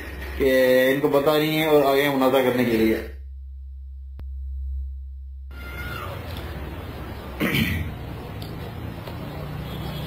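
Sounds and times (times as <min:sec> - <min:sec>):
low steady hum: 0:02.7 - 0:08.5.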